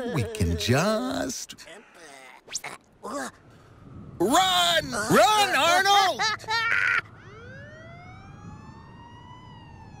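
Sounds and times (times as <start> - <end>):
emergency vehicle siren wailing: 3.6 - 10.0.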